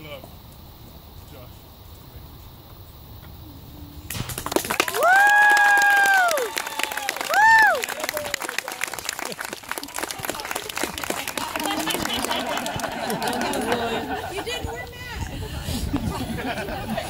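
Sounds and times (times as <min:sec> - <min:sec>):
people clapping and cheering: 0:04.1 - 0:14.4
high whoop: 0:04.7 - 0:08.5
people talking and laughing: 0:05.4 - 0:17.0.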